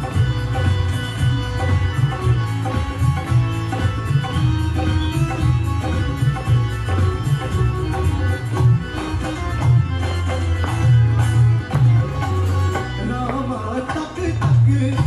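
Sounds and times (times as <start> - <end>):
band with strings keyboard and bass: 0.0 - 15.0.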